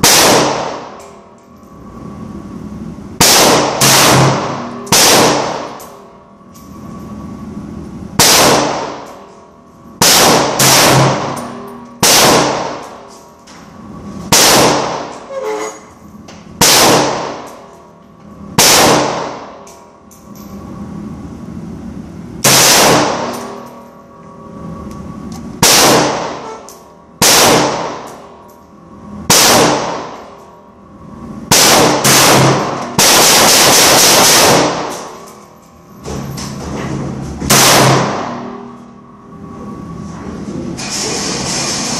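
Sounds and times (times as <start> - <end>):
rifle shots with ringing echo: 0.0 - 1.0, 3.2 - 5.9, 8.2 - 9.3, 10.0 - 13.1, 14.3 - 15.2, 16.6 - 17.7, 18.6 - 19.6, 22.4 - 23.6, 25.6 - 26.6, 27.2 - 28.4, 29.3 - 30.4, 31.5 - 35.3, 37.5 - 38.5
loud steady noise: 0.0 - 41.9.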